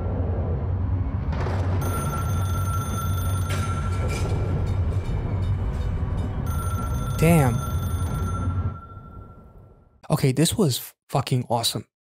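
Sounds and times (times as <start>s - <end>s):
low rumble: 0.0s - 2.7s
steady high tone: 1.8s - 9.9s.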